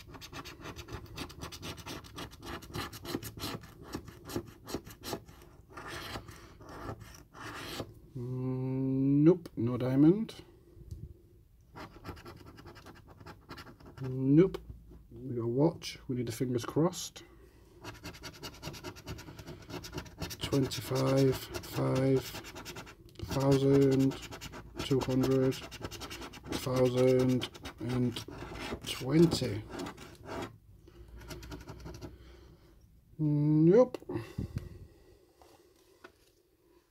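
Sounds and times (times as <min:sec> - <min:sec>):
coin scratching scratchcard: 0:00.0 - 0:07.9, 0:17.8 - 0:30.6, 0:31.2 - 0:32.1.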